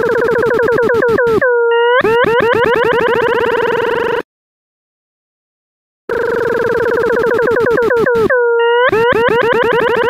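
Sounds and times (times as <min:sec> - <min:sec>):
synthesized tone swooping in pitch: 0:00.0 - 0:04.2, 0:07.2 - 0:10.0.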